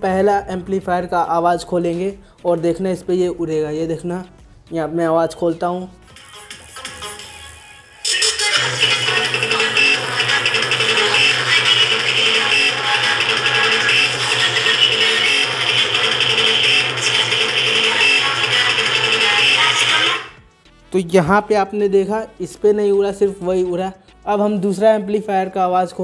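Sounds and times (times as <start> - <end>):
song through small loudspeaker: 5.6 - 25.1.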